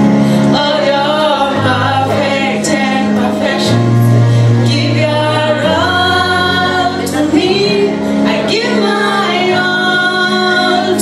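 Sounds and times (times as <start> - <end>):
backing track with bass: 0.0 - 11.0
woman singing gospel: 0.5 - 11.0.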